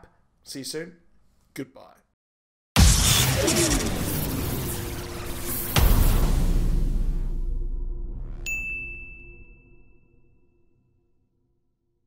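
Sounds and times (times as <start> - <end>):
low rumble hit: 2.8 - 8.5
rising sweep: 2.8 - 8.5
bright high ding: 8.5 - 10.3.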